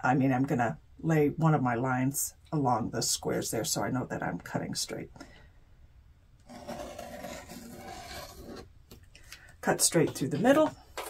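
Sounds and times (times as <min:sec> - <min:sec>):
rotary cutter scraping through fabric: 0:06.5 - 0:08.7.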